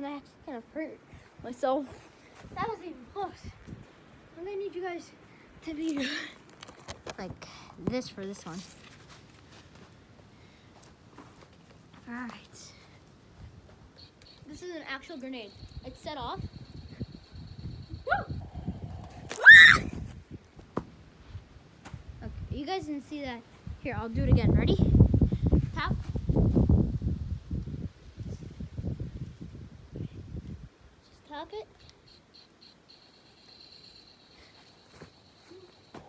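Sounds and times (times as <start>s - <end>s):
toy electronic beeping: 14.0s - 18.4s, 31.7s - 35.9s
boy screaming: 18.1s - 18.4s, 19.2s - 20.0s.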